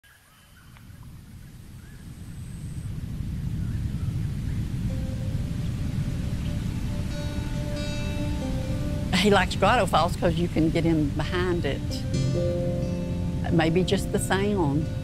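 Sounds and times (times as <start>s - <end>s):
waterfall rushing: 2.9s - 15.0s
sustained music notes: 3.5s - 15.0s.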